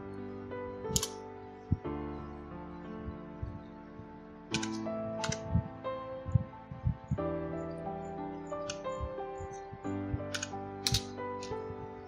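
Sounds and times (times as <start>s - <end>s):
background music: 0.0s - 12.0s
keyboard typing clicks: 4.5s - 5.7s, 8.7s - 9.6s, 10.2s - 11.8s.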